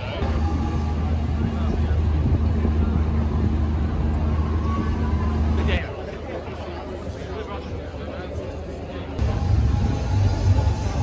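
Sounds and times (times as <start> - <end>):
low motor hum: 0.0 - 6.0, 9.2 - 11.0
crowd chatter: 0.0 - 11.0.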